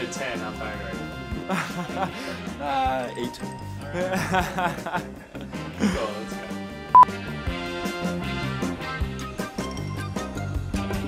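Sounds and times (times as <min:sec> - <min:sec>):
background music with steady beat: 0:00.0 - 0:11.0
man laughing: 0:01.4 - 0:02.4, 0:04.0 - 0:06.3.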